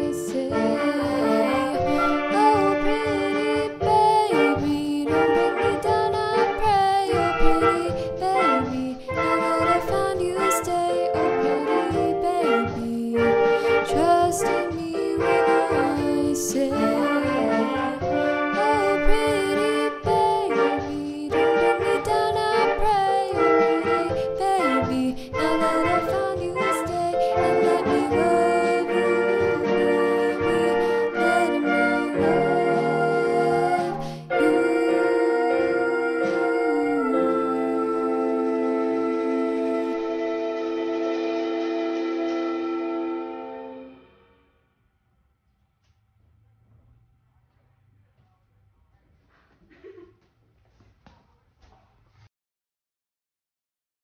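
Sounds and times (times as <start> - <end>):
girl singing: 0.0 - 40.2
instrumental backing with beat: 0.0 - 42.4.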